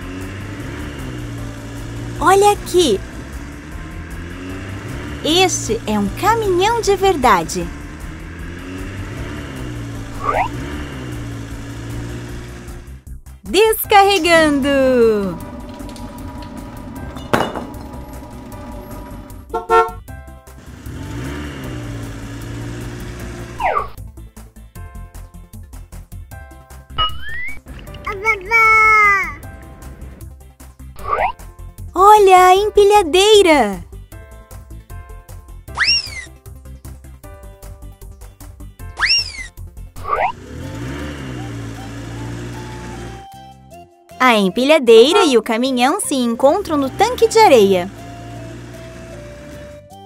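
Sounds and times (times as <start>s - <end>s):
low vehicle engine drone: 0.0s - 24.1s, 27.0s - 30.4s, 39.1s - 43.3s, 46.2s - 50.0s
children's background music: 1.2s - 10.7s, 11.3s - 20.7s, 21.4s - 40.4s, 41.5s - 50.0s.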